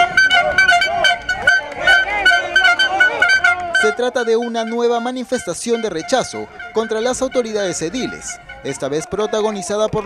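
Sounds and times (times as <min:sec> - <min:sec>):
handheld horns tooting: 0:00.0 - 0:09.9
marchers shouting: 0:00.0 - 0:10.0.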